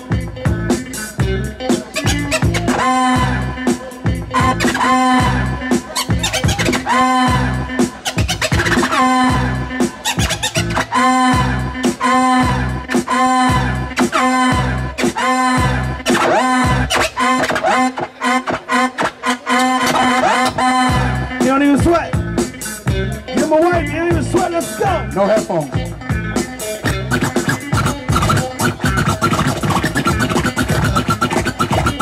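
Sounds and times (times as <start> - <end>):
turntable scratching: 0.0 - 21.9, 26.4 - 32.0
hip hop beat: 0.0 - 32.0.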